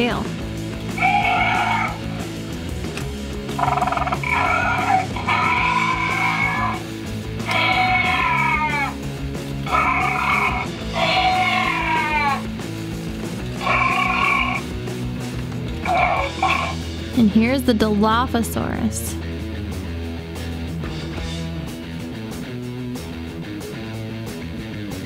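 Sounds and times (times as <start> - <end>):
background music: 0.0 - 25.0
electronic dinosaur screech: 1.0 - 2.0, 3.6 - 6.8, 7.4 - 8.9, 9.7 - 12.4, 13.6 - 14.6.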